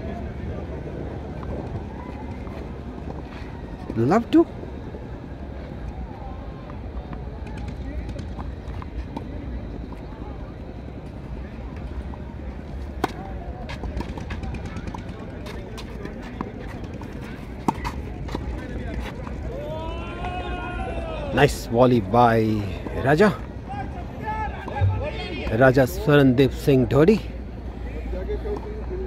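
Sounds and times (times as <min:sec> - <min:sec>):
outdoor background noise: 0:00.0 - 0:29.0.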